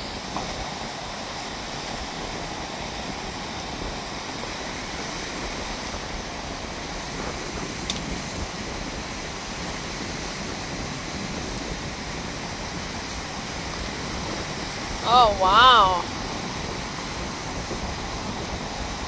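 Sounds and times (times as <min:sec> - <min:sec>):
ocean surf: 0:00.0 - 0:19.0
wind: 0:00.0 - 0:19.0.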